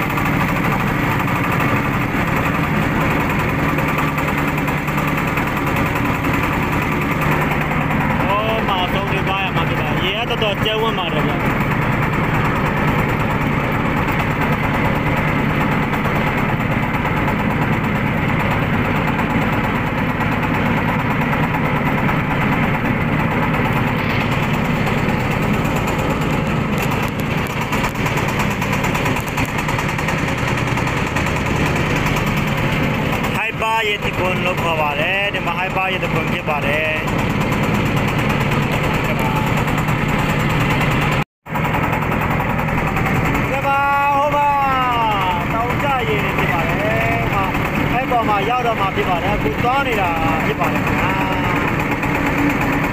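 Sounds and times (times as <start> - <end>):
motorboat engine droning: 0.0 - 52.9.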